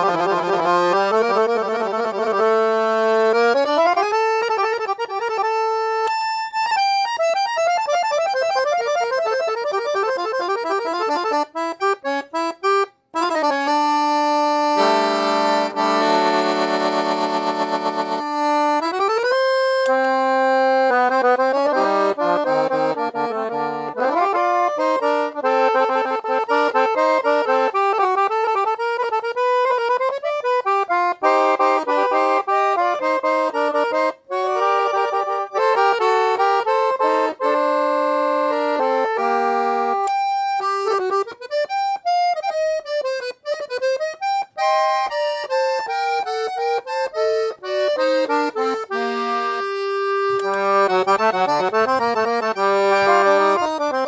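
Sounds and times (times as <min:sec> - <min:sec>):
piano accordion playing: 0:00.0 - 0:54.0.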